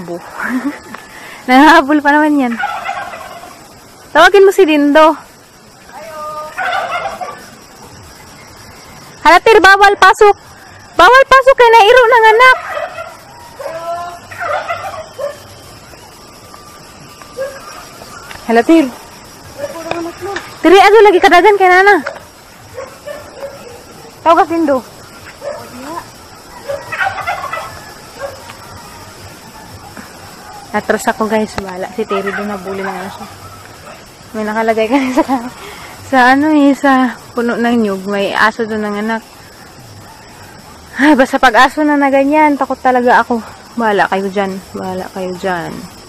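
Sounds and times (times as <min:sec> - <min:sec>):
domestic fowl calling: 0:00.2 - 0:09.2, 0:10.0 - 0:36.0
turkey gobbling: 0:02.5 - 0:03.8, 0:06.4 - 0:07.6, 0:12.2 - 0:18.4, 0:25.1 - 0:30.7, 0:32.0 - 0:34.1.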